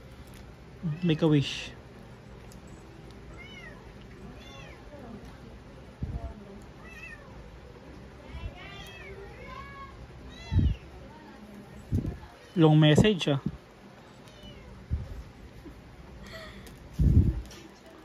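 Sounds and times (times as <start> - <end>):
cat meowing: 3.3 - 4.9, 6.8 - 7.4, 8.6 - 10.9, 14.2 - 14.8.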